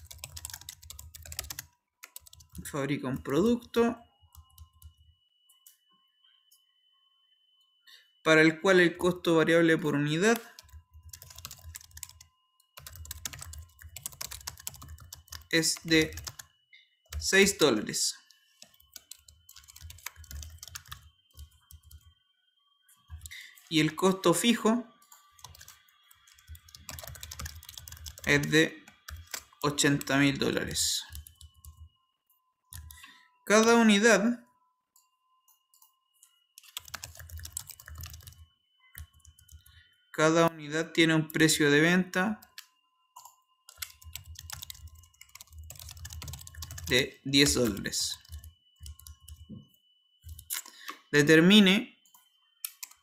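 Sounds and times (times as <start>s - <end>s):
keyboard typing clicks: 0.0s - 2.6s, 10.4s - 16.5s, 18.3s - 22.1s, 25.0s - 28.5s, 29.1s - 30.0s, 35.7s - 39.7s, 42.4s - 49.5s, 50.2s - 51.0s, 52.1s - 53.0s.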